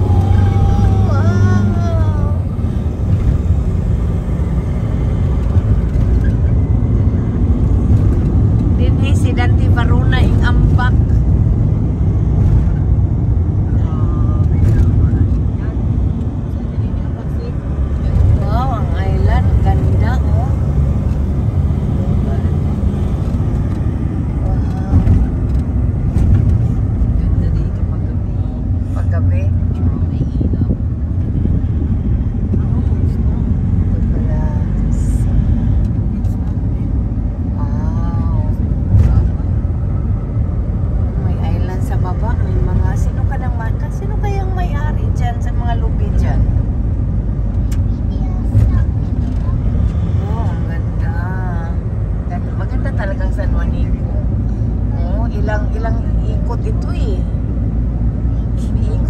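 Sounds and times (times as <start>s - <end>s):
voices: 0.0s - 3.3s, 47.5s - 57.5s
road and engine rumble: 0.0s - 59.0s.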